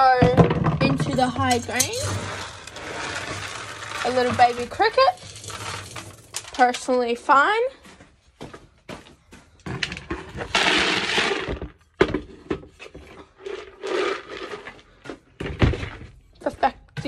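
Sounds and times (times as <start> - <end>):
feed scoop knocks and clatters: 0.0 - 7.0, 9.6 - 16.2
dry feed pouring into bucket: 2.0 - 6.6, 10.5 - 11.6, 13.5 - 14.7.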